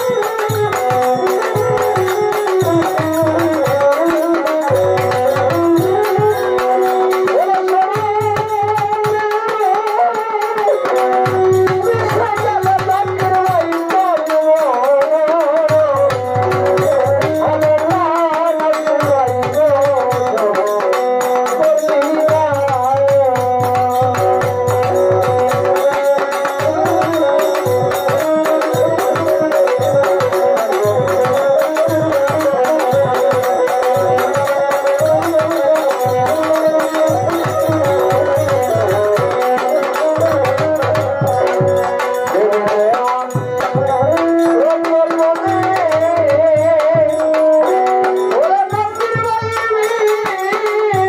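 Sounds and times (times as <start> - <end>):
drum strokes: 0.0 - 51.0
held harmonium notes: 0.0 - 51.0
jingling percussion: 0.0 - 51.0
violin playing wavering melody: 0.0 - 51.0.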